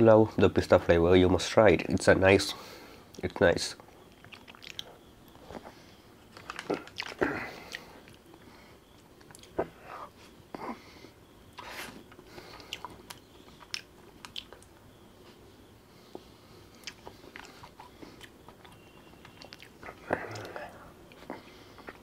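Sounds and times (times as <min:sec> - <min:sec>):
biting and chewing ice cream: 0:04.0 - 0:09.8, 0:11.5 - 0:14.8, 0:16.2 - 0:22.0
mouth clicks: 0:16.1 - 0:22.0.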